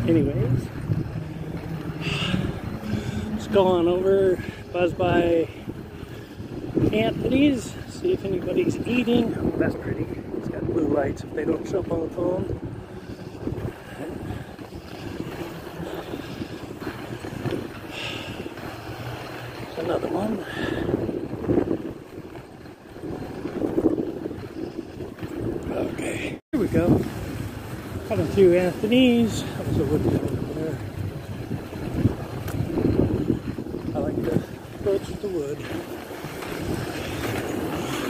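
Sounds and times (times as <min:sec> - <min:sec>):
skate wheels rolling on wet pavement: 0:00.0 - 0:38.0
wind buffeting microphone: 0:00.0 - 0:38.0.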